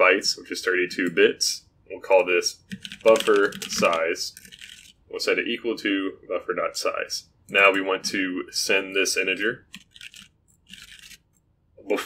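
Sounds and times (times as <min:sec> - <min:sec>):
keyboard typing: 0:02.6 - 0:05.0, 0:09.6 - 0:11.3.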